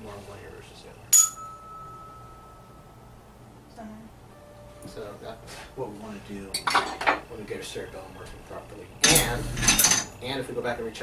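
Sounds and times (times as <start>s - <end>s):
tuning fork ringing: 1.1s - 3.2s.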